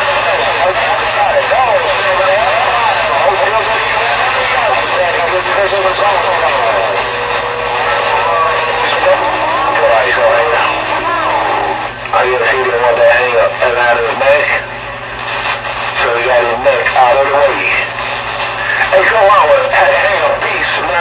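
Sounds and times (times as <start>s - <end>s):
garbled voices over radio: 0.0s - 15.1s, 15.9s - 21.0s
steady low hum: 0.0s - 21.0s.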